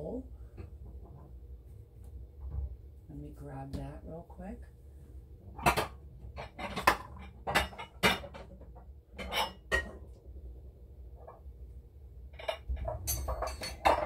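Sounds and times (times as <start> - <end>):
glass bowls clinking: 12.4 - 14.0.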